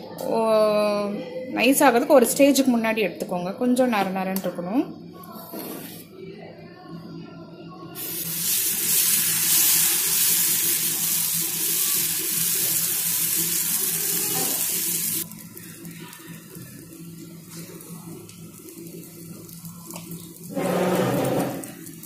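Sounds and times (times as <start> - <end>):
batter sizzling on a hot pan: 8.0 - 22.0.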